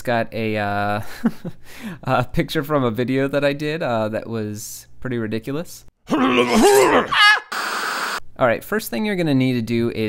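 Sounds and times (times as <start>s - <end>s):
man groaning and wailing: 6.1s - 8.1s
static hiss: 7.5s - 8.2s.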